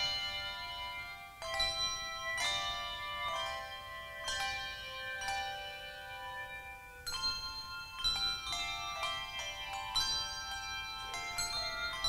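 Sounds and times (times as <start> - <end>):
handbell choir playing: 0.0 - 12.0.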